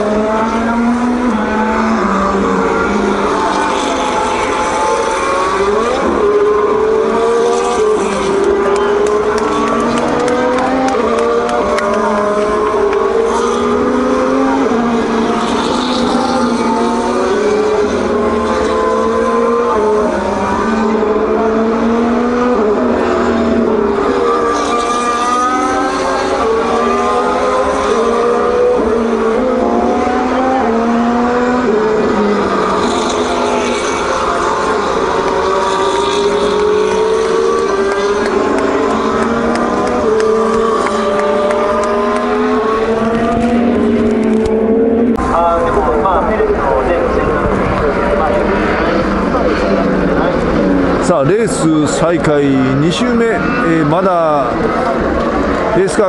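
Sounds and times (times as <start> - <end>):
racing car engines passing: 0.0 - 56.0.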